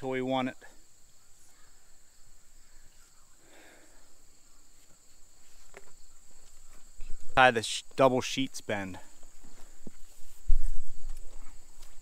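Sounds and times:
insects trilling: 0:00.0 - 0:12.0
faint rustle: 0:00.7 - 0:07.4, 0:09.0 - 0:12.0.

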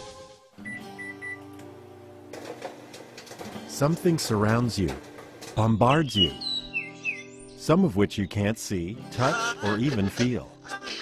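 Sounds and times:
microwave short high beeps: 0:00.6 - 0:01.5
microwave running hum: 0:00.6 - 0:05.6.

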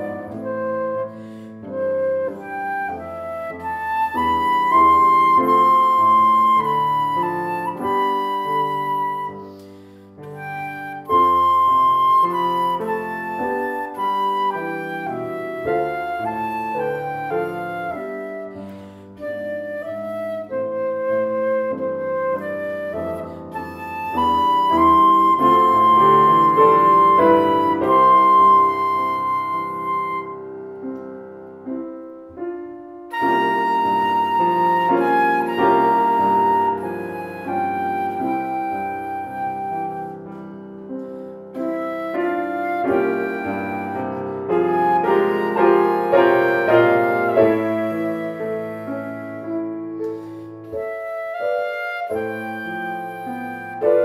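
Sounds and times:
flute melody: 0:00.0 - 0:54.0
piano accompaniment: 0:00.0 - 0:54.0.

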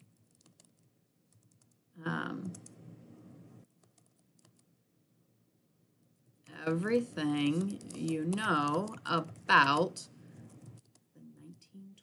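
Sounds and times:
computer keyboard typing: 0:00.0 - 0:01.8, 0:02.4 - 0:02.8, 0:03.6 - 0:04.7, 0:07.4 - 0:11.7.

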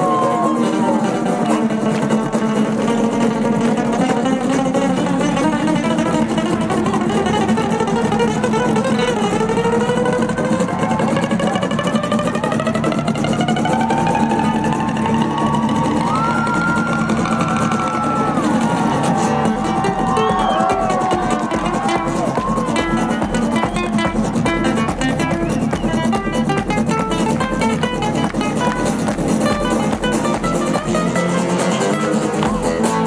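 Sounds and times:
acoustic guitars strumming and picking: 0:00.0 - 0:33.0.

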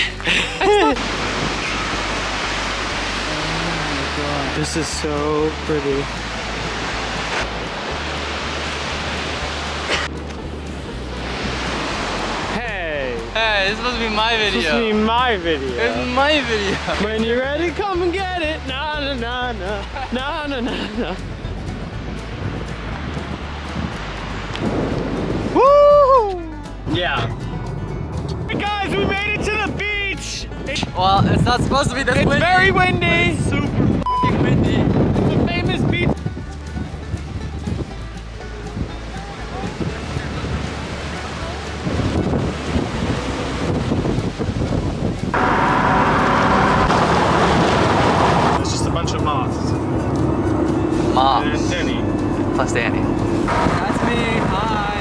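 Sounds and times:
wind on microphone: 0:00.6 - 0:04.2, 0:21.4 - 0:55.0
car road noise inside cabin: 0:42.2 - 0:54.5.

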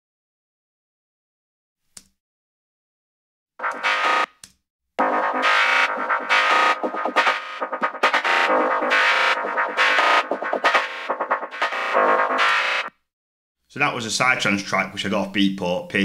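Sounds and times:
chopped synth line: 0:03.6 - 0:04.4, 0:05.0 - 0:12.9.

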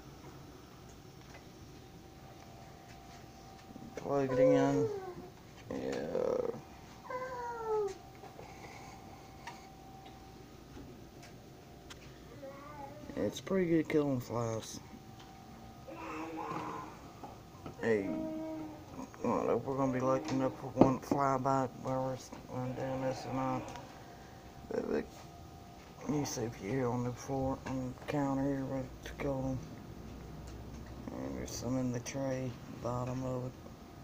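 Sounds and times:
faint steady hum: 0:00.0 - 0:34.0
indistinct voices: 0:03.7 - 0:10.2, 0:12.3 - 0:25.2
person saying hey: 0:04.0 - 0:08.0, 0:17.8 - 0:20.8.

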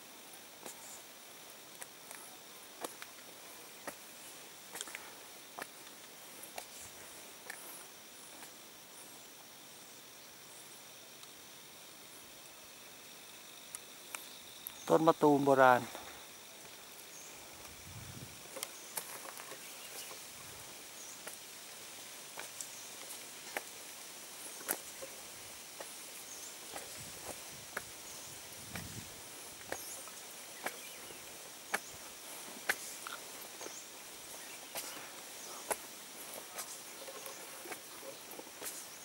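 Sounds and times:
insects hissing: 0:00.0 - 0:39.0
footsteps on stone steps: 0:01.8 - 0:08.6, 0:15.8 - 0:39.0.

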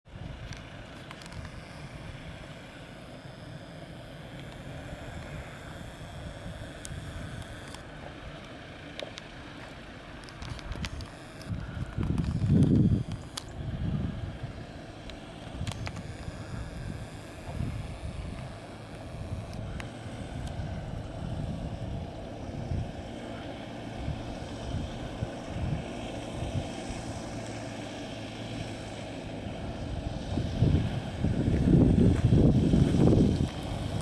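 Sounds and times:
off-road vehicle engines rumbling: 0:00.1 - 0:34.0
wind on microphone: 0:10.4 - 0:14.8, 0:15.4 - 0:27.4, 0:29.6 - 0:34.0.

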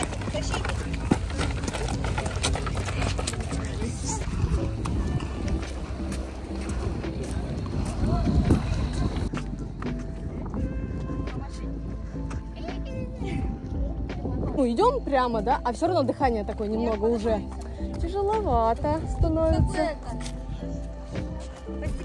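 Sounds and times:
footsteps on rock: 0:00.0 - 0:11.6
indistinct voices: 0:00.0 - 0:14.1
wind rumble on microphone: 0:00.0 - 0:15.2, 0:18.0 - 0:22.0
music with held notes: 0:00.0 - 0:22.0.

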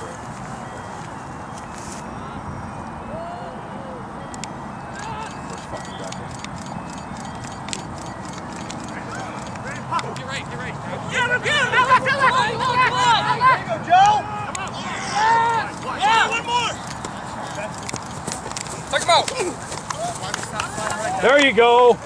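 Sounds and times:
rushing background noise: 0:00.0 - 0:22.0
distant shouts: 0:02.2 - 0:07.0, 0:08.8 - 0:17.8.

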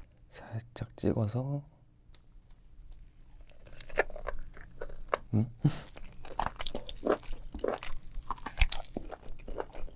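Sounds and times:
biting and chewing mouth sounds: 0:03.4 - 0:09.9.

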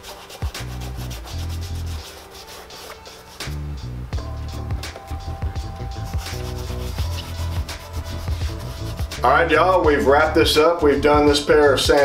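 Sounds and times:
brush rubbing shoe leather: 0:00.0 - 0:03.7, 0:04.9 - 0:09.4
background music: 0:00.0 - 0:12.0.

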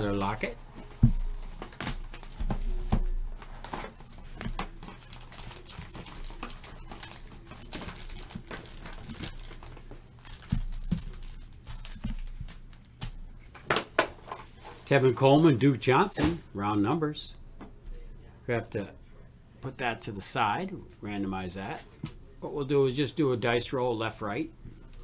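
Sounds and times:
foil wrappers crinkling: 0:00.0 - 0:13.2.

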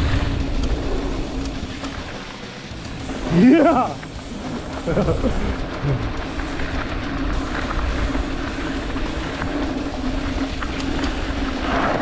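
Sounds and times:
bike clicks and rattles: 0:00.0 - 0:12.0
tyres running on dirt: 0:00.0 - 0:12.0.

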